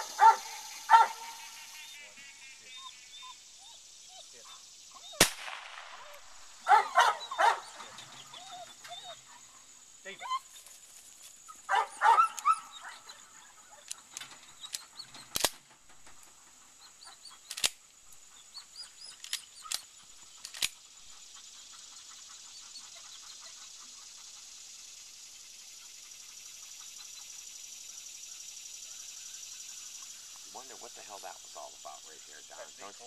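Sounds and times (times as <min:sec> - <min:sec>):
dog yelping: 0:00.0 - 0:01.4, 0:02.7 - 0:09.5, 0:10.1 - 0:10.6, 0:11.5 - 0:15.3
birds chirping: 0:00.0 - 0:33.0
sharp clicks: 0:13.8 - 0:15.7, 0:17.4 - 0:18.0, 0:19.0 - 0:20.8.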